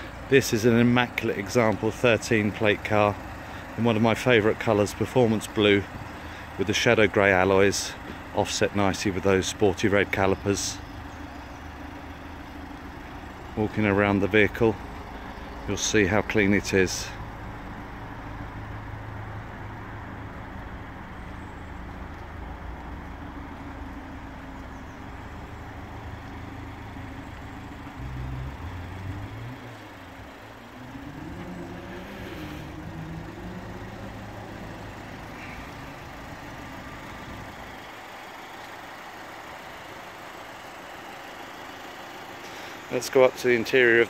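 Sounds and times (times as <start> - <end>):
vehicle engine humming: 0.0 - 44.0.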